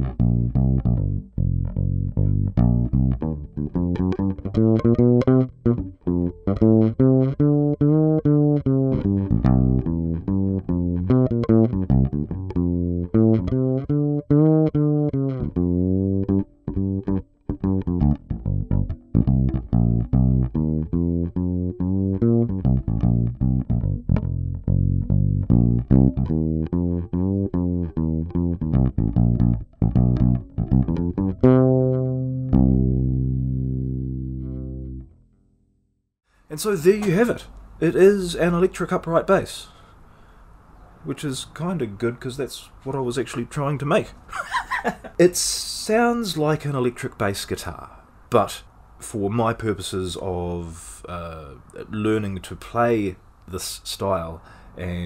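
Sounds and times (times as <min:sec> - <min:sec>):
fretless bass plucked notes: 0:00.0 - 0:35.6.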